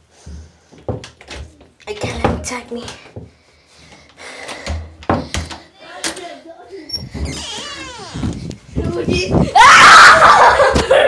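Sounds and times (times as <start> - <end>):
knocks and thumps: 4.6 - 5.6.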